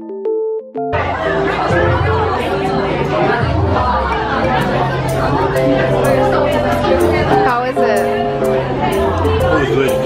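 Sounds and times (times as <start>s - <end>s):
soft electric piano music: 0.0s - 10.0s
cafe chatter of many voices: 0.9s - 10.0s.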